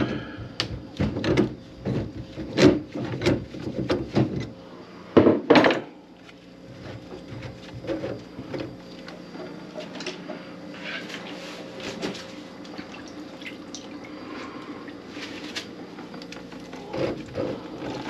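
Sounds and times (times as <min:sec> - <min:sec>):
wooden cabinet knocks and clunks: 0:00.6 - 0:04.5, 0:05.2 - 0:05.8.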